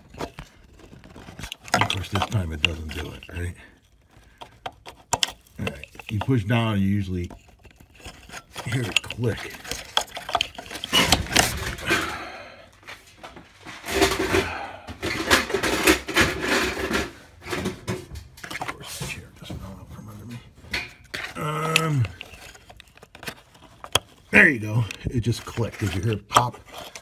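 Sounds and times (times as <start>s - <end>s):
plastic parts scraping and knocking: 0.0s - 27.0s.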